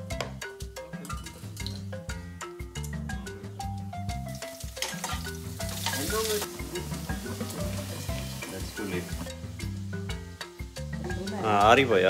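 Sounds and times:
background music: 0:00.0 - 0:12.0
leaves sizzling on hot iron pan: 0:04.2 - 0:12.0.

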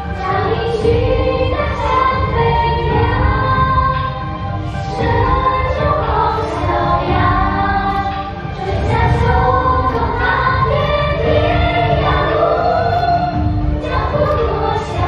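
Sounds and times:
backing music with beat: 0:00.0 - 0:15.0
children singing: 0:00.0 - 0:15.0.

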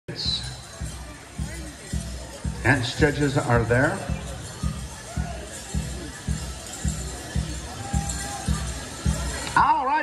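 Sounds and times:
deep drum beats: 0:00.1 - 0:09.6.

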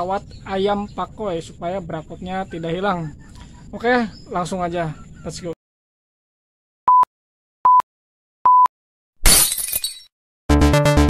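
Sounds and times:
glass shattering sound effect: 0:09.2 - 0:10.1.

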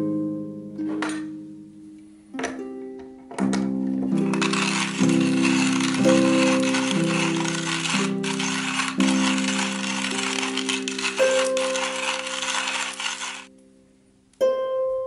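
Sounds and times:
hand grinder crushing coffee beans: 0:04.2 - 0:13.5.

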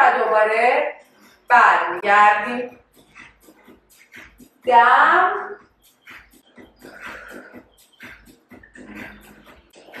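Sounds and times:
woman breathing hard: 0:06.5 - 0:08.3.

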